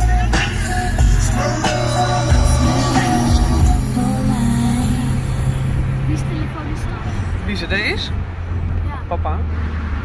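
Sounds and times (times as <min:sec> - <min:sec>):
car engine and tyre hum: 0:00.0 - 0:10.0.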